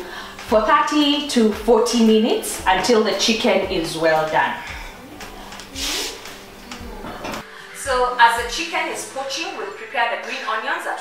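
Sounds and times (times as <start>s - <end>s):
woman speaking: 0.5s - 5.2s, 7.8s - 11.0s.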